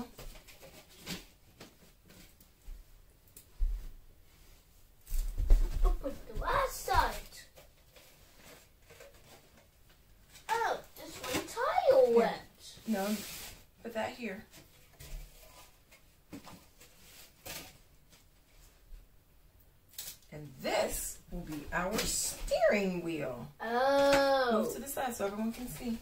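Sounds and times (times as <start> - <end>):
child's voice: 5.9 - 7.5, 10.5 - 12.7, 23.6 - 24.8.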